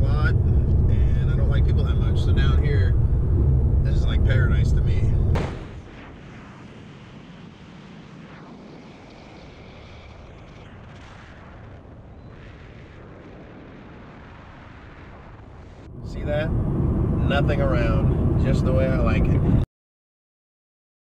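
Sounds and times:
car road noise: 0.0 - 6.1, 7.5 - 19.6
wind rumbling on microphone: 0.0 - 19.6
wind rush: 0.0 - 19.6.

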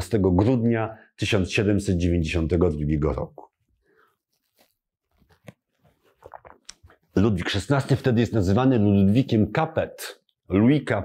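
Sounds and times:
sipping and swallowing: 6.0 - 7.1.

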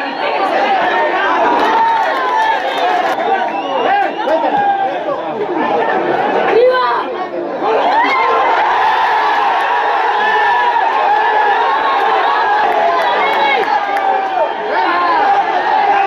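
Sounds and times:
stadium crowd shouting and chattering: 0.0 - 16.0.

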